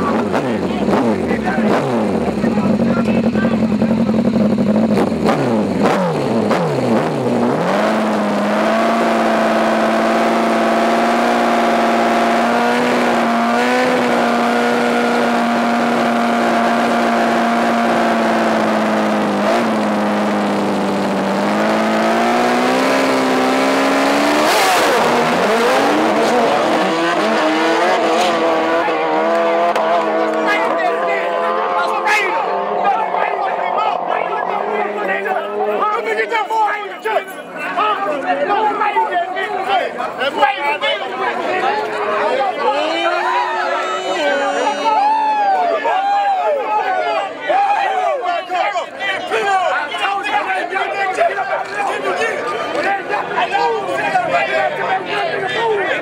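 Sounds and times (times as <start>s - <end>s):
motorcycle engines revving: 0.0s - 47.7s.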